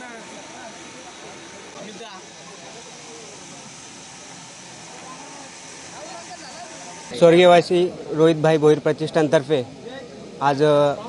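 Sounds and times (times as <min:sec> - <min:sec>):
faint crowd chatter: 0:00.0 - 0:11.0
steady hiss: 0:00.0 - 0:11.0.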